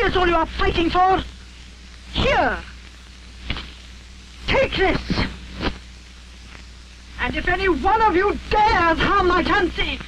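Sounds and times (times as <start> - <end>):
film soundtrack hiss: 0.0 - 10.0.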